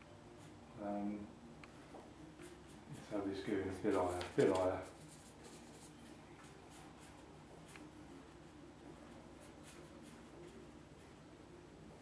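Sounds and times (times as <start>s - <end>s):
low steady room hum: 0.0s - 12.0s
brush scratching on paper: 2.4s - 11.3s.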